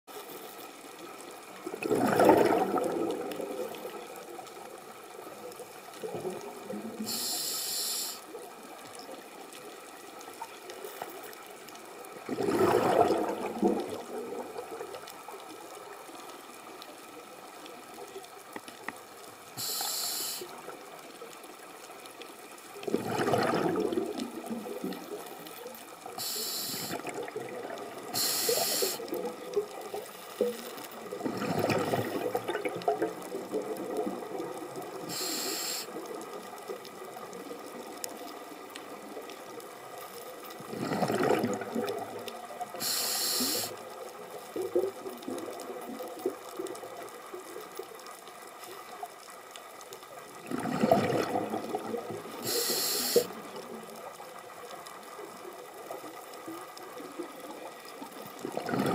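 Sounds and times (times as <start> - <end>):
faint steady hiss: 0.1 - 58.9
exhaled bubbles rushing: 1.6 - 4.3, 12.2 - 15.0, 22.8 - 25.4, 26.9 - 35.1, 40.6 - 42.7, 44.5 - 47.0, 50.4 - 52.5, 55.9 - 58.9
regulator inhale hiss: 7.0 - 8.4, 19.6 - 20.6, 26.2 - 27.0, 28.1 - 29.2, 35.0 - 36.0, 42.8 - 43.8, 52.4 - 53.4.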